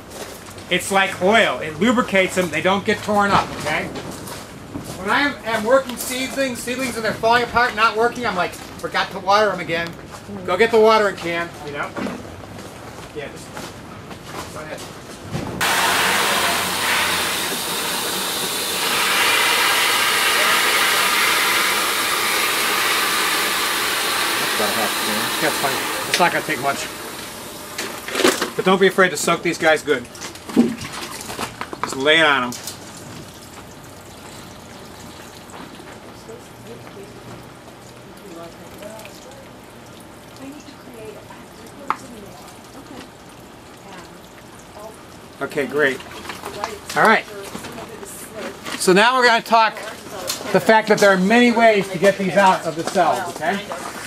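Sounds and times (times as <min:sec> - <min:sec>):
hose water into watering can: 0:15.6 - 0:36.8.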